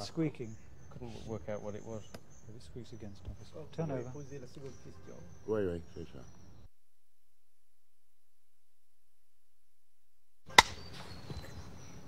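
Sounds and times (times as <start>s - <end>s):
faint outdoor background: 0.0s - 12.0s.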